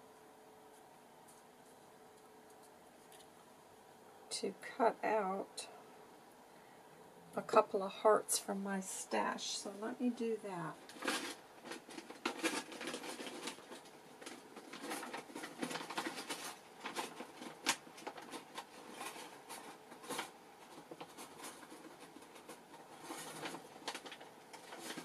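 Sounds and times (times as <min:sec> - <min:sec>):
paper rustling and scratching: 0:10.7 - 0:25.0.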